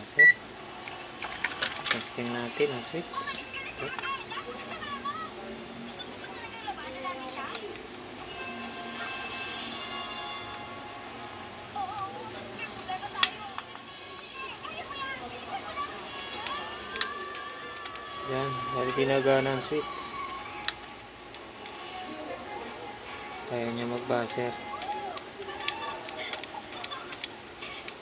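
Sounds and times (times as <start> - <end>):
indistinct background voices: 0.7 - 28.0
background music: 6.9 - 12.5, 13.6 - 27.0.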